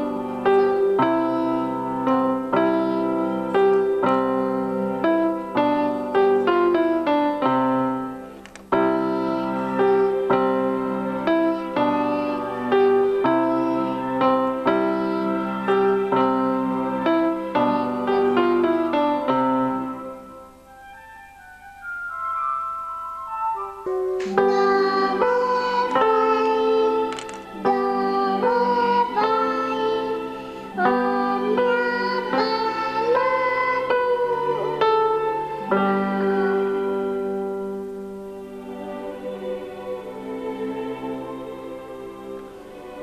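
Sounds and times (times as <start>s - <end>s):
electronic keyboard slow melody: 0.0s - 43.0s.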